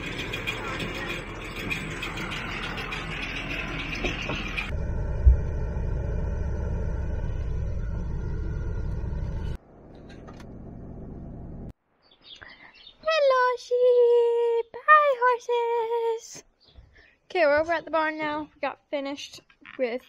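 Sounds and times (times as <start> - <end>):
tractor engine and baler running: 0.0 - 5.1.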